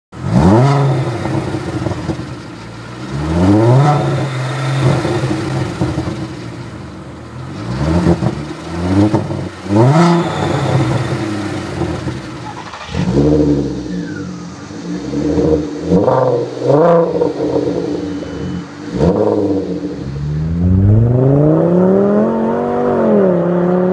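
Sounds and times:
car engine revving: 0.1 - 23.9.

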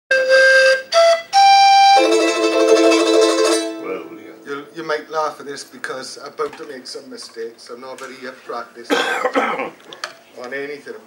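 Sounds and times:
hand-held instrument notes and chord: 1.1 - 5.4.

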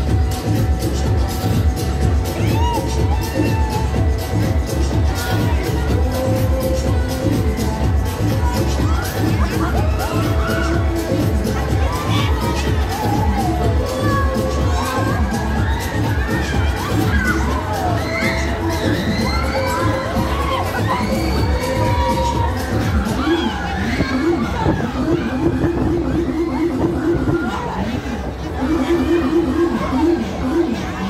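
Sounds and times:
music with pulsing bass beat: 0.0 - 31.0
riders screaming: 11.8 - 25.4.

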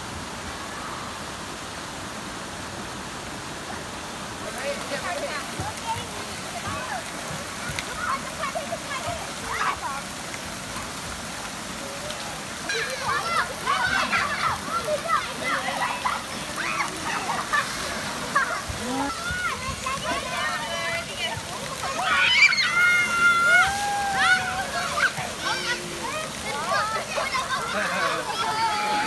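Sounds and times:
water spraying and splashing: 0.0 - 29.0
children shouting: 12.6 - 29.0.

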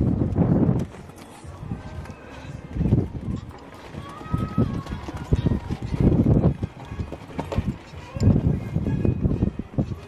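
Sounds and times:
hoofbeats on sand: 2.9 - 10.0.

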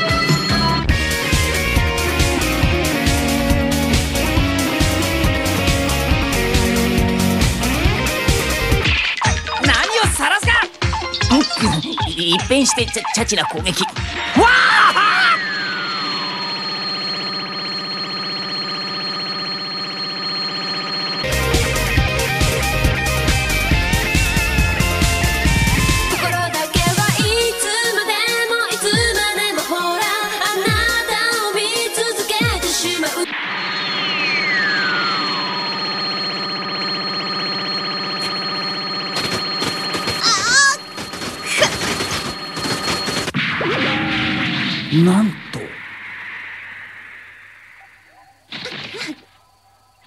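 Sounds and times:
tone gliding downward: 11.2 - 26.2, 33.2 - 42.9
thin high whine: 14.1 - 23.6, 33.2 - 50.0
falling whistle: 14.3 - 18.0, 33.3 - 38.4
pulsing electronic buzz: 15.0 - 26.3, 33.3 - 44.1
pulsing electric buzz: 33.3 - 43.4.

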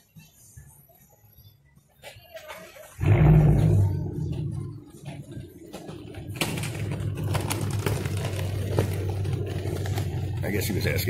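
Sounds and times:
car engine running: 3.0 - 11.0.

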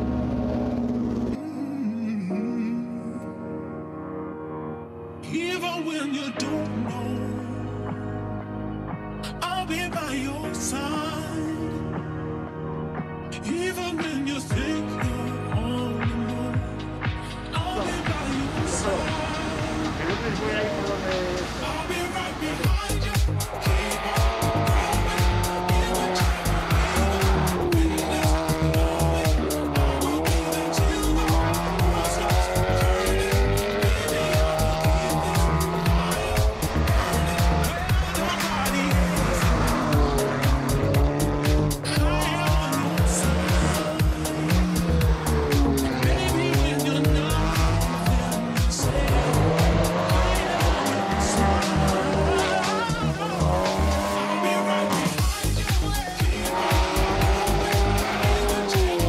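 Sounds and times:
race car engine revving: 0.0 - 1.4, 17.8 - 59.0
background music: 0.0 - 59.0.

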